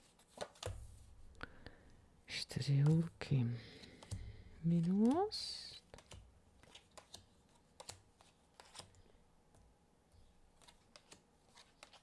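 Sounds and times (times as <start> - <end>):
cards clicking on a table: 3.8 - 5.3, 5.9 - 9.0, 10.6 - 12.0.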